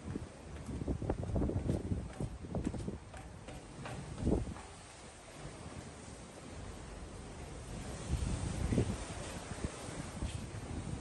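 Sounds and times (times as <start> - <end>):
footsteps on steel stairs: 0.5 - 5.0.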